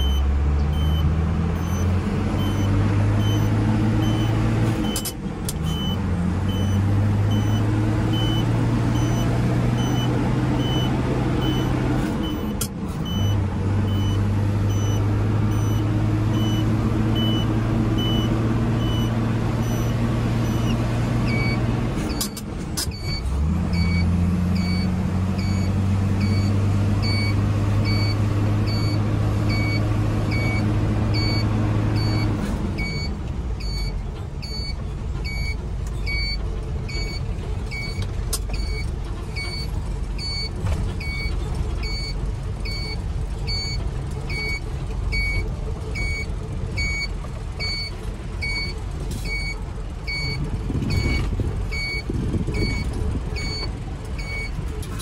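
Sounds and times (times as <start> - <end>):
short electronic beep: 0.0 - 5.1
truck engine drone from inside cab: 0.0 - 55.0.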